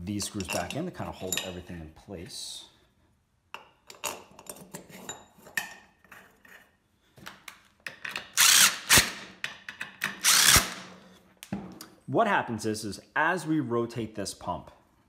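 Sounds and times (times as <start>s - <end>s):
screws and parts clinking: 0.2s - 1.7s
cordless drill driving screws: 8.3s - 9.2s, 10.1s - 10.8s.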